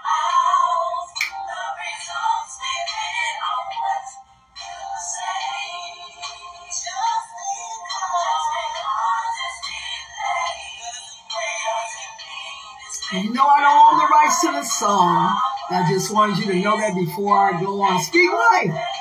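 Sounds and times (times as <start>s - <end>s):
thin-sounding song with singing: 0.0s - 19.0s.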